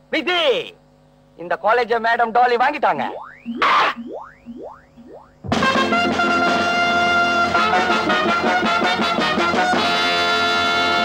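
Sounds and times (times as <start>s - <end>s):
rising boing swoops: 3.1s - 5.6s.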